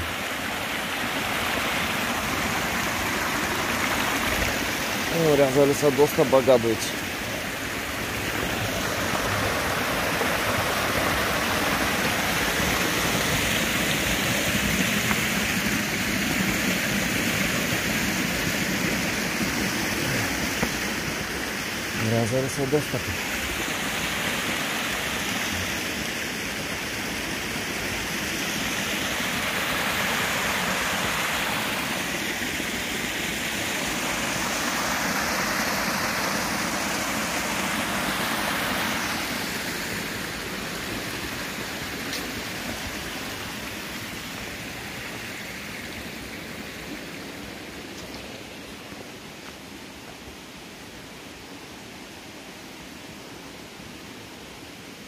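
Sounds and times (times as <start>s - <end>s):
stream rushing over rocks: 0.0s - 55.0s.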